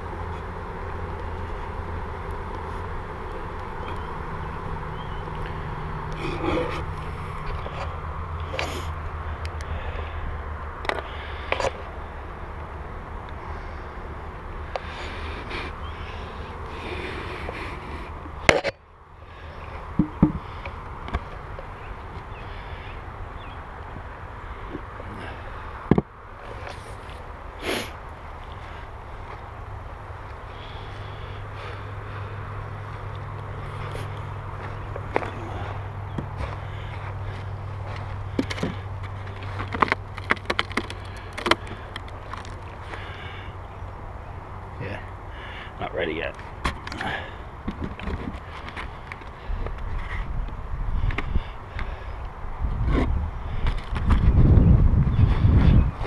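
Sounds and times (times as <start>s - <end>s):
steady low hum: 0.0s - 56.0s
wood knocking and scraping on wood: 19.8s - 21.6s, 25.8s - 26.8s, 37.9s - 42.6s, 47.6s - 50.1s.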